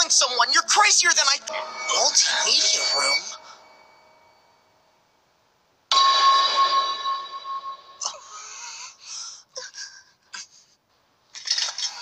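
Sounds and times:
bright ringing sting: 1.4s - 5.0s, 5.9s - 8.1s.

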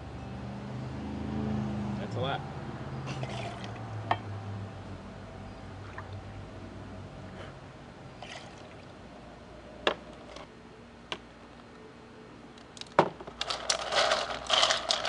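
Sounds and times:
juice pouring into shaker: 13.5s - 15.0s.

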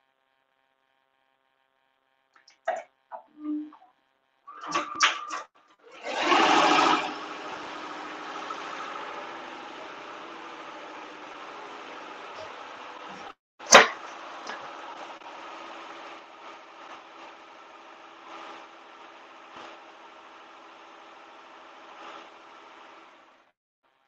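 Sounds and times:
embroidery machine running: 4.5s - 23.5s.

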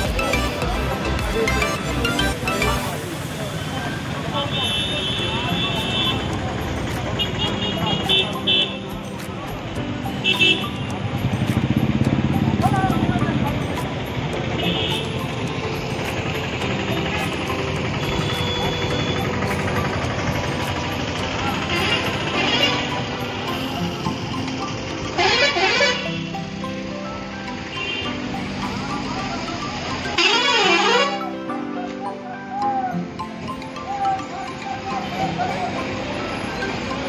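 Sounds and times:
crowd chatter: 0.0s - 15.6s, 31.0s - 37.0s
buses and vehicles running: 0.0s - 37.0s
vehicle horn toots: 30.2s - 31.2s.

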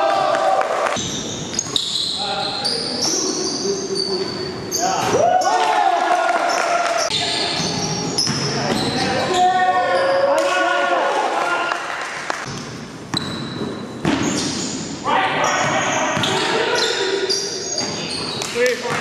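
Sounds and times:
sneakers squeaking: 1.0s - 5.2s, 6.5s - 10.2s, 12.5s - 19.0s.

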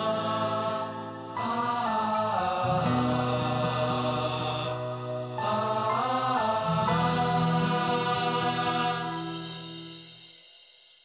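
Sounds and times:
chant-like vocal line: 0.0s - 10.0s.

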